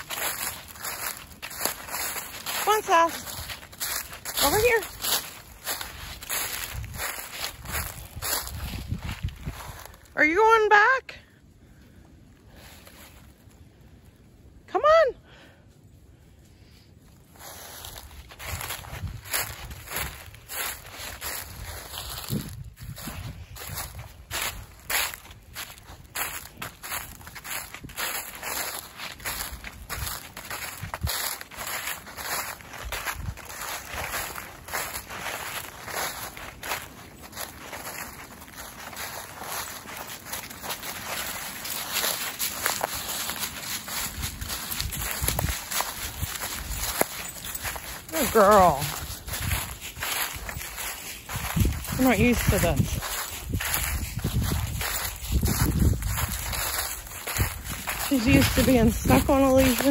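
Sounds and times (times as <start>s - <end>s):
footsteps crunching dry leaves: 0.0s - 11.0s, 12.4s - 13.8s, 16.7s - 59.9s.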